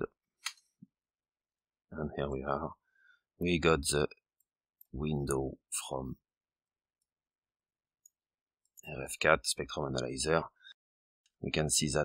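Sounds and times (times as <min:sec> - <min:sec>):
man speaking: 0:02.0 - 0:02.7, 0:03.4 - 0:04.1, 0:05.0 - 0:06.2, 0:08.8 - 0:10.6, 0:11.4 - 0:12.0.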